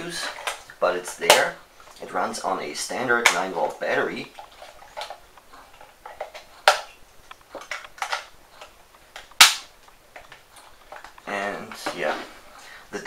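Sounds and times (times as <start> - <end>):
plastic clicks and knocks: 4.9 - 12.0.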